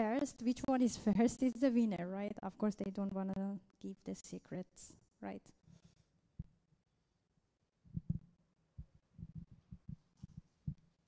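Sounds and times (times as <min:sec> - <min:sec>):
soft low thumps: 0:07.9 - 0:11.0.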